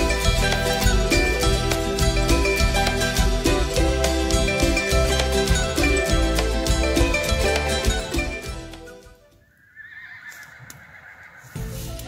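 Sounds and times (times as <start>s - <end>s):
music: 0.0s - 9.4s, 11.5s - 12.0s
horse whinnying: 9.3s - 11.9s.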